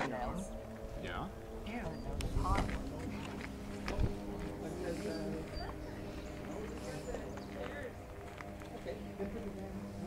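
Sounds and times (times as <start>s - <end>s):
indistinct voices talking: 0.0s - 10.0s
steady low hum: 0.0s - 10.0s.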